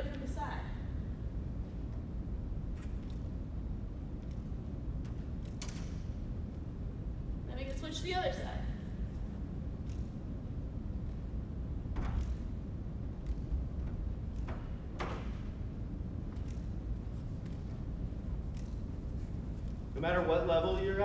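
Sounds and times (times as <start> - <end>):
low room rumble: 0.0 - 21.0.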